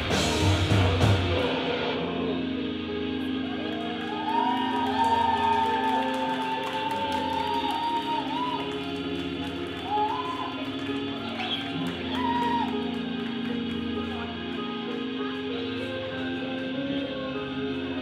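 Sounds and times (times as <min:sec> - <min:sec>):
rock band playing: 0:00.0 - 0:04.6.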